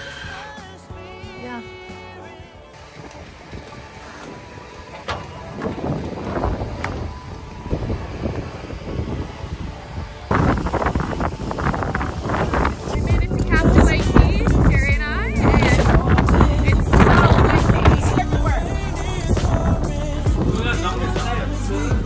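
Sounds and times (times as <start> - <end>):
wind buffeting microphone: 2.8 - 21.4.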